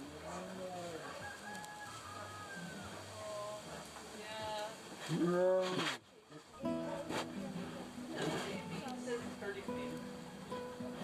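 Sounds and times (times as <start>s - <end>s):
rooster crowing: 1.1s - 3.2s.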